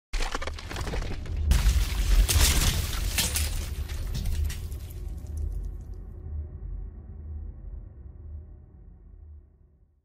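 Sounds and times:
stone wall crumbling: 0:00.2 - 0:05.7
crash with deep rumble: 0:00.8 - 0:05.8.

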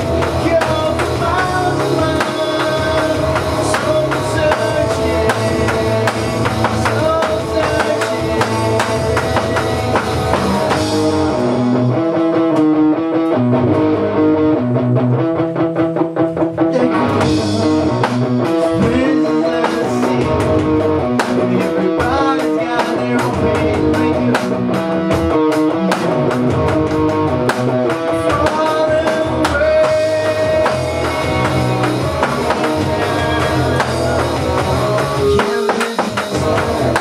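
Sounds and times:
person singing: 0:00.0 - 0:09.6, 0:16.6 - 0:26.3, 0:28.0 - 0:37.0
rock band playing: 0:00.0 - 0:37.0.

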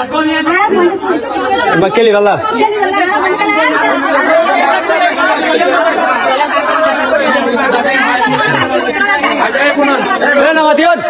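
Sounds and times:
women and children talking: 0:00.0 - 0:11.0.

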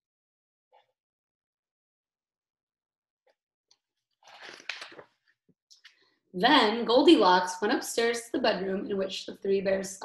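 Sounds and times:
book pages turning: 0:04.2 - 0:05.3.

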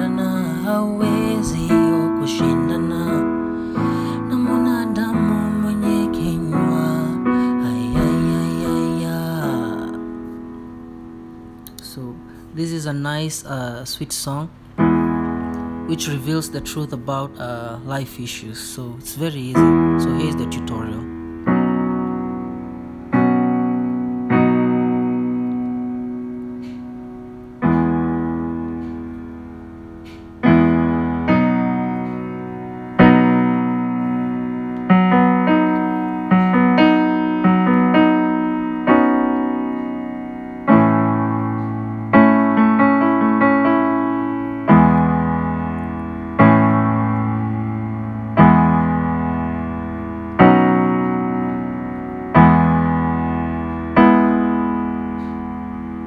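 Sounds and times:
electronic keyboard piano chords: 0:00.0 - 0:56.0.

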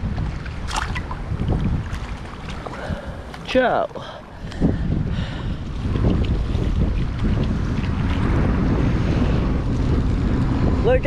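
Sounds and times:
waves splashing against wall: 0:00.0 - 0:11.0
wind buffeting microphone: 0:00.0 - 0:11.0.

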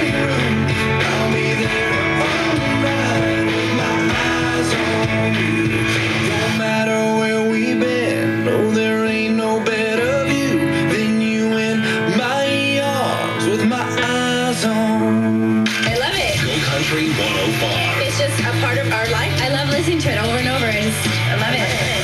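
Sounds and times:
country song on radio: 0:00.0 - 0:22.0.

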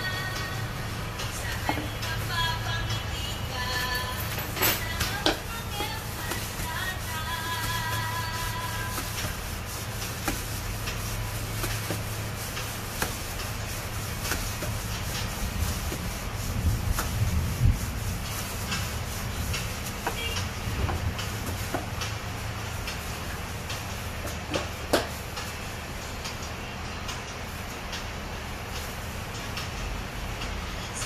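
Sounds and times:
music with singing voice: 0:00.0 - 0:09.6.

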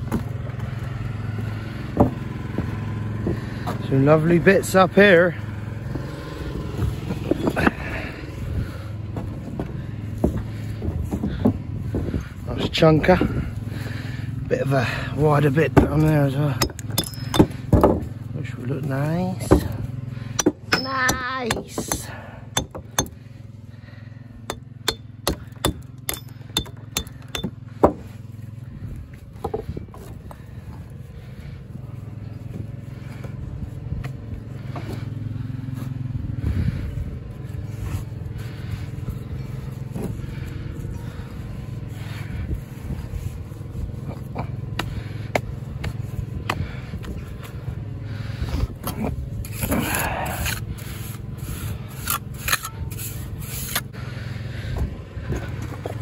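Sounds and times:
steady low hum: 0:05.0 - 0:56.0
hammer striking stone: 0:16.6 - 0:18.0, 0:20.4 - 0:23.2, 0:24.5 - 0:28.0
trowel scraping wet mortar: 0:49.4 - 0:53.9.

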